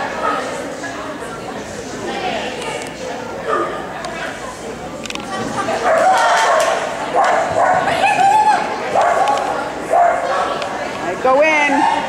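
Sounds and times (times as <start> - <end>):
people's voices: 0.0 - 12.0
dog barking: 5.9 - 7.9, 9.0 - 10.3.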